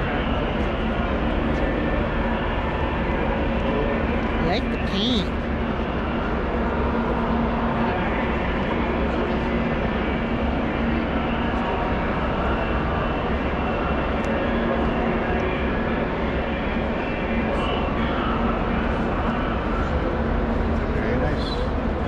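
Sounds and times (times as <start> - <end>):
indistinct crowd chatter: 0.0 - 22.0
low hum and rumble: 0.0 - 22.0.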